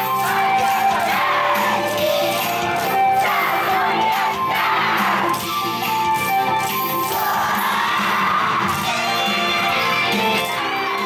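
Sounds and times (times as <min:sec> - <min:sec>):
dance music over loudspeakers: 0:00.0 - 0:11.0
dancers shouting together: 0:07.1 - 0:08.9.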